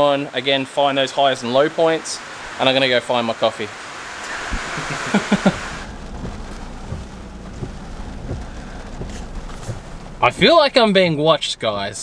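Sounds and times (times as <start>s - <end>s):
rain hiss: 0.0s - 12.0s
low rumble: 4.3s - 10.5s
person laughing: 4.4s - 5.9s.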